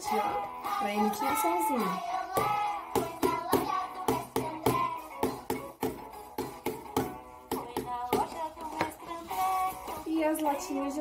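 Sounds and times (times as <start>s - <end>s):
children's song with singing: 0.0s - 11.0s
hand knocking on plastic tub: 2.4s - 9.0s.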